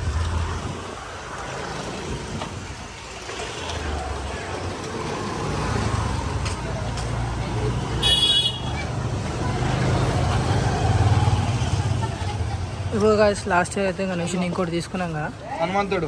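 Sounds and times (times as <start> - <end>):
motorbike engines passing: 0.0 - 16.0.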